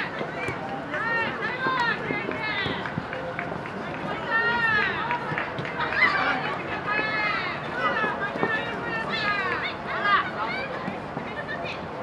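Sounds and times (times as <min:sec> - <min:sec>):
players shouting calls: 0:00.0 - 0:11.5
running footsteps: 0:00.0 - 0:11.5.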